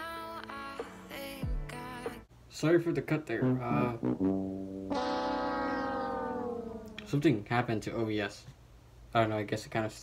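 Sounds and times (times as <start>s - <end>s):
man's drawn-out hesitation sound: 3.4s - 4.2s.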